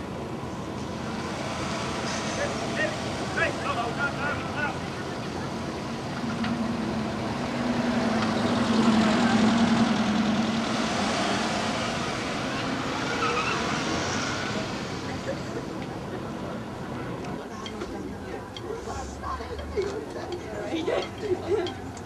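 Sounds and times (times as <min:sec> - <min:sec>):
car driving past: 0:05.6 - 0:15.4.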